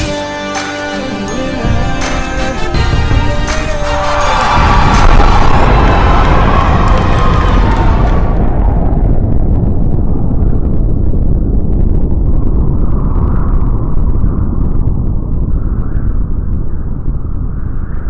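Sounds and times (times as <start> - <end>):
music: 0.0 - 8.3
deep rolling thunder rumble: 4.4 - 18.0.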